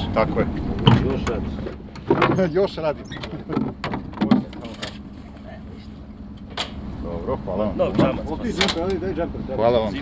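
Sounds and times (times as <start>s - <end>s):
dull thump: 0.8s - 2.5s
short knocks: 0.8s - 2.6s.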